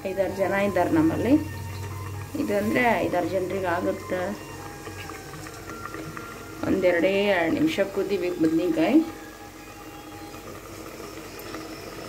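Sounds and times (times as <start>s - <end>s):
curry bubbling in covered pot: 0.0s - 12.0s.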